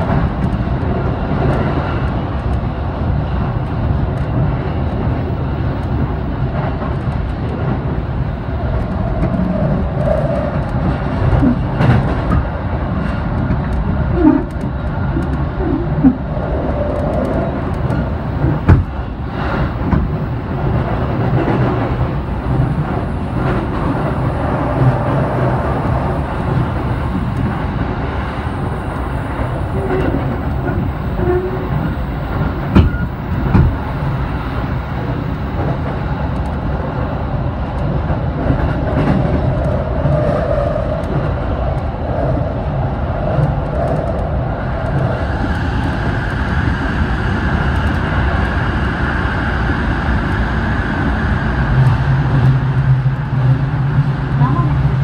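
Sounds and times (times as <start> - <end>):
train wheels on rails: 0.0 - 55.0.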